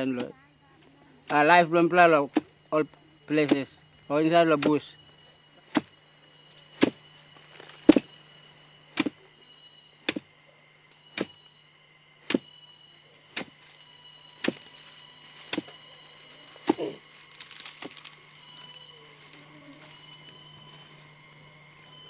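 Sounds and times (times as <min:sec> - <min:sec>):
pounder striking palm pith: 0:00.0 - 0:00.4, 0:02.2 - 0:02.6, 0:03.3 - 0:03.8, 0:04.5 - 0:05.0, 0:05.6 - 0:06.0, 0:06.8 - 0:07.0, 0:07.8 - 0:08.2, 0:08.9 - 0:09.2, 0:10.0 - 0:10.4, 0:11.1 - 0:11.5, 0:12.2 - 0:12.6, 0:13.3 - 0:13.8, 0:14.4 - 0:14.8, 0:15.4 - 0:15.8, 0:16.6 - 0:18.0.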